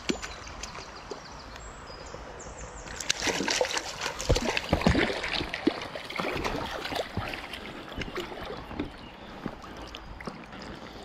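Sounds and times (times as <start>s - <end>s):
fish splashing in stream water: 2.9s - 8.9s.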